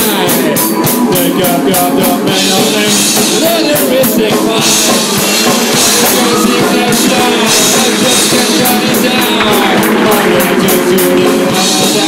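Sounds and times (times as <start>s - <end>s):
drum kit with cymbals: 0.0s - 12.0s
electric guitar: 0.0s - 12.0s.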